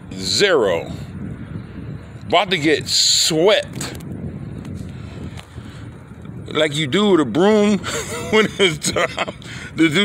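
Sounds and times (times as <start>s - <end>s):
low outdoor background noise: 0.0s - 10.0s.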